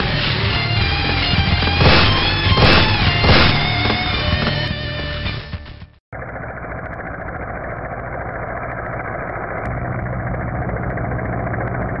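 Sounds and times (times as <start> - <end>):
engine-like rumble: 6.1 - 12.0.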